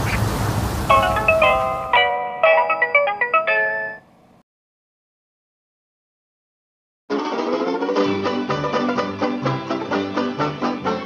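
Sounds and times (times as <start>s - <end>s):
bright music jingle notes: 0.9s - 4.1s.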